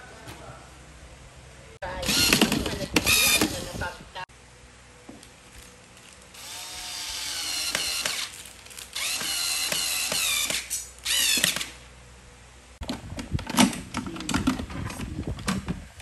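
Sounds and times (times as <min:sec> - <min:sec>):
electric screwdriver motor whining: 0:06.4 - 0:08.4, 0:09.0 - 0:11.7.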